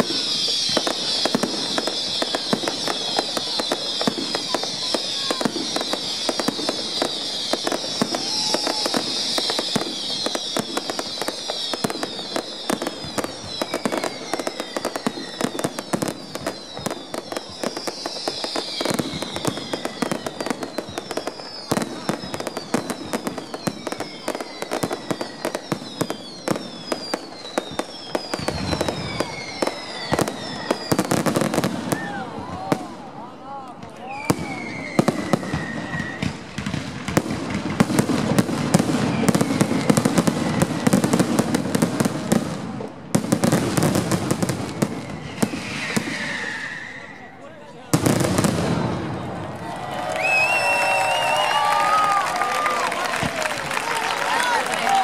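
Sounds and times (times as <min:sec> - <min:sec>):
falling firework whistles: 0:00.0 - 0:33.0, 0:33.9 - 0:55.0
firework bangs: 0:00.0 - 0:47.3, 0:47.9 - 0:55.0
firework crackling: 0:00.0 - 0:55.0
rumbling firework barrage: 0:48.0 - 0:52.0.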